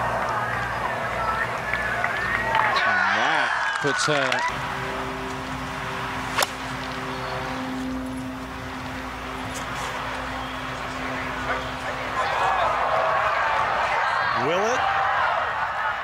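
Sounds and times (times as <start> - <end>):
crowd reacting: 0.0 - 4.5, 10.3 - 16.0
golf club striking ball: 6.3 - 6.8.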